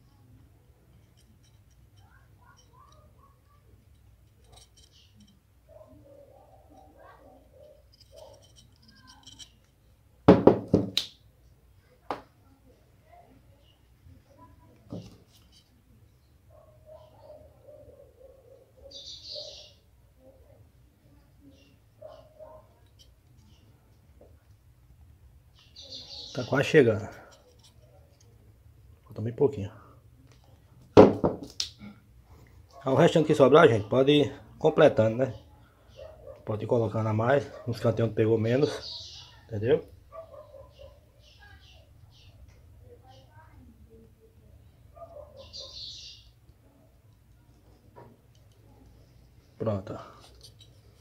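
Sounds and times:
faint handling sounds: 0:00.0 - 0:10.2, 0:11.4 - 0:18.8, 0:20.6 - 0:33.4, 0:46.4 - 0:51.0
sharp knock of metal can: 0:10.3 - 0:11.0.

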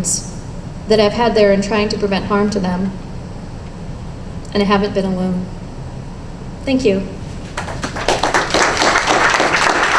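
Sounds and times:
audience applause: 0:07.6 - 0:09.9.

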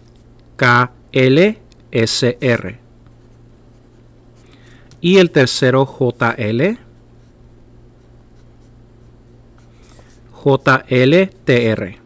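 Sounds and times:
pencil scratching on paper: 0:08.0 - 0:10.8.

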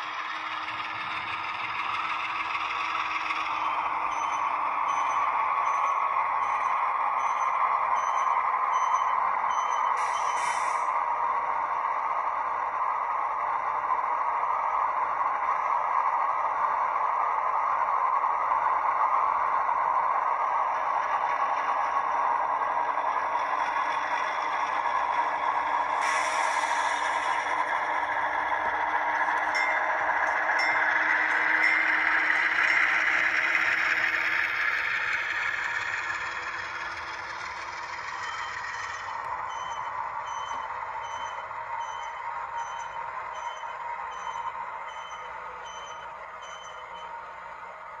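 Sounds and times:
model train diesel engine sound: 0:00.0 - 0:48.0.

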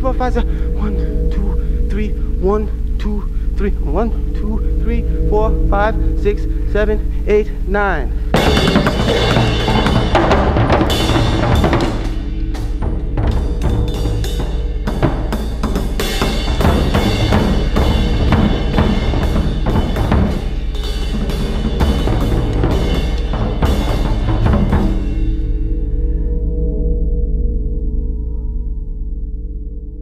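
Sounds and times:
low ringing tone: 0:00.0 - 0:30.0
fast dense drumming: 0:08.1 - 0:25.5.

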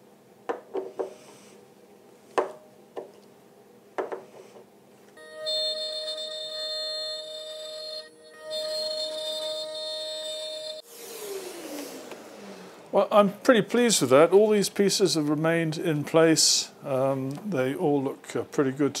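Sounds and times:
router spindle whining: 0:05.3 - 0:13.0.

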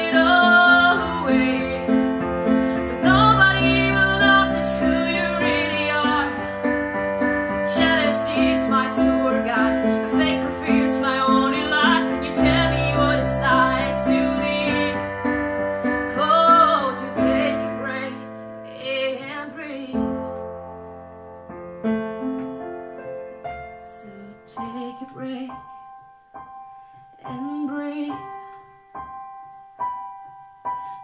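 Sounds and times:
woman singing: 0:00.0 - 0:20.4, 0:23.8 - 0:25.8, 0:27.2 - 0:28.6
electronic keyboard piano sound: 0:00.0 - 0:31.0.

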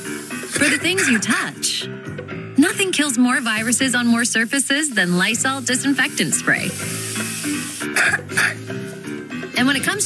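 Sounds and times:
aerosol spray hissing: 0:00.0 - 0:01.2, 0:03.0 - 0:09.2
soft background music: 0:00.0 - 0:10.0.

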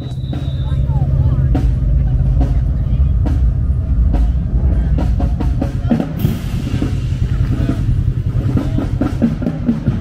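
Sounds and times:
bass drum and drums: 0:00.0 - 0:10.0.

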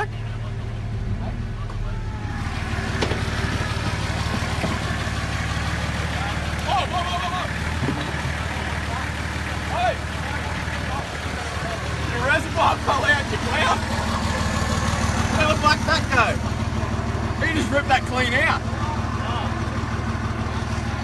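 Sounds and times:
truck engine running: 0:00.0 - 0:21.0
onlookers shouting: 0:01.6 - 0:07.8.

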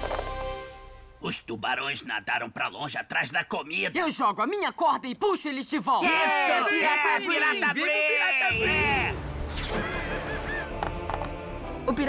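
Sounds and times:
cartoon children chanting and cheering: 0:06.0 - 0:09.2
soft background music: 0:09.2 - 0:12.0.

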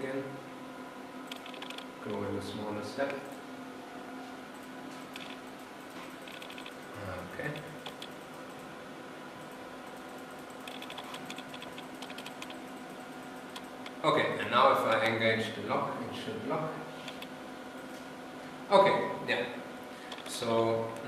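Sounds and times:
steady electronic hum: 0:00.0 - 0:21.0
computer keyboard clicking: 0:01.3 - 0:01.9, 0:04.6 - 0:08.7, 0:09.4 - 0:14.0, 0:14.8 - 0:15.2, 0:17.1 - 0:17.9, 0:20.1 - 0:20.4.

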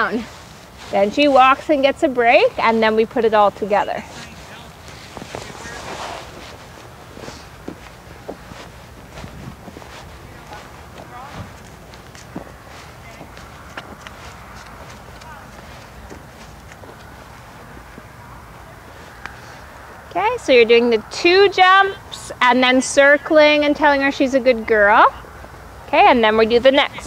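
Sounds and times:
footsteps on dirt: 0:00.0 - 0:20.1
horse hooves on soft dirt: 0:00.0 - 0:20.7
outdoor background noise: 0:00.0 - 0:27.0.

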